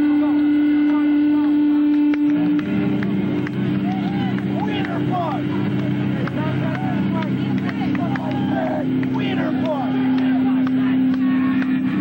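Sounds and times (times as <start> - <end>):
amplifier hum: 0.0 - 12.0
crowd voices and shouts: 0.0 - 12.0.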